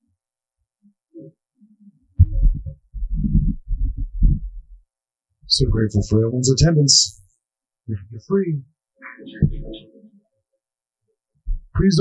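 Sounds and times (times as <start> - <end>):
microphone handling thumps: 2.2 - 4.8, 5.4 - 6.1, 9.4 - 9.8, 11.4 - 11.8.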